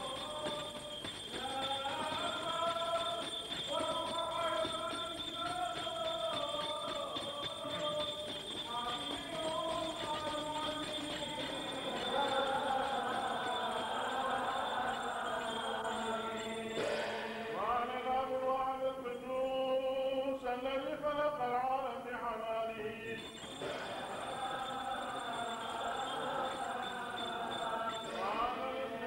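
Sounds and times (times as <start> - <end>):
liturgical chant: 0.0 - 29.0.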